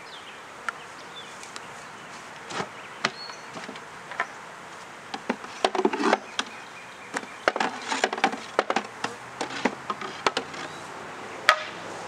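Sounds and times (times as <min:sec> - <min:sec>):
honeybees buzzing: 0:00.1 - 0:12.0
wooden hive boxes knocking: 0:02.4 - 0:04.3, 0:05.1 - 0:06.5, 0:07.1 - 0:10.8.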